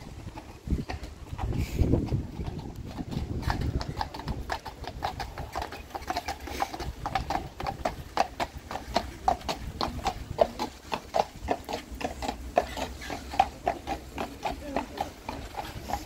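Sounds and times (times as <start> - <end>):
horse hooves clip-clopping on tarmac: 0.0 - 16.0.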